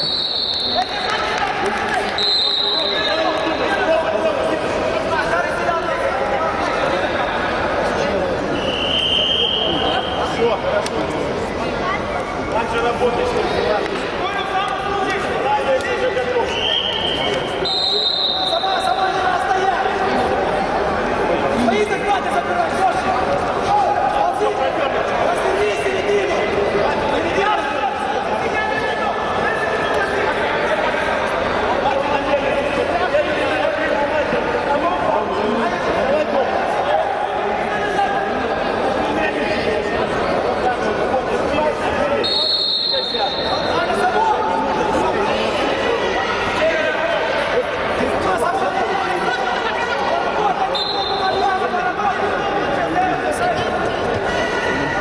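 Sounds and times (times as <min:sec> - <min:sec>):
high whistle-like tone: 0:00.0 - 0:01.0, 0:02.2 - 0:03.3, 0:08.6 - 0:10.2, 0:16.5 - 0:18.9, 0:42.2 - 0:43.8
people chattering in a hall: 0:00.0 - 0:55.0
people talking and calling out: 0:00.0 - 0:55.0.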